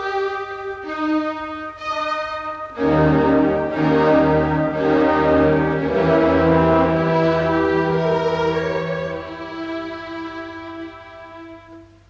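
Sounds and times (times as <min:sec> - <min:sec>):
orchestra playing sustained chords: 0:00.0 - 0:11.9.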